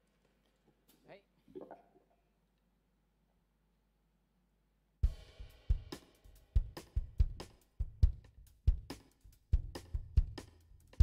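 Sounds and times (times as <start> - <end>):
drum kit playing: 5.0 - 11.0.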